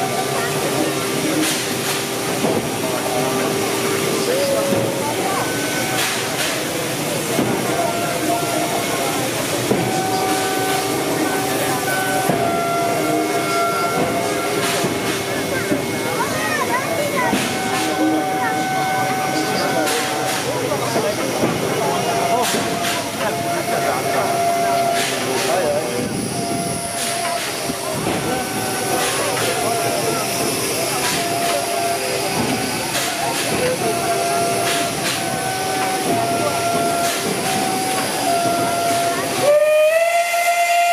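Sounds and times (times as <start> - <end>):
crowd chatter: 0.0 - 40.9
steam hiss: 0.0 - 40.9.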